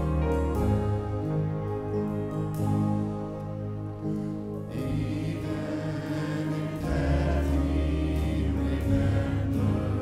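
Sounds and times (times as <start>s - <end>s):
deep bass: 0.0s - 10.0s
grand piano: 0.0s - 10.0s
choir singing with band: 4.7s - 10.0s.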